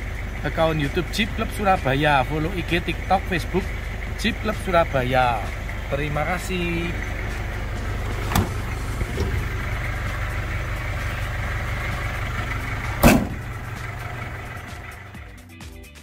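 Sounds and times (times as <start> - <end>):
diesel engine idling: 0.0 - 15.8
loud sharp thump: 13.0 - 13.5.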